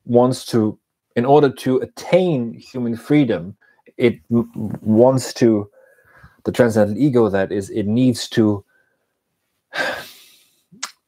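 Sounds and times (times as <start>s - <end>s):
man sighing: 9.7s - 10.5s
mouth click: 10.8s - 11.0s.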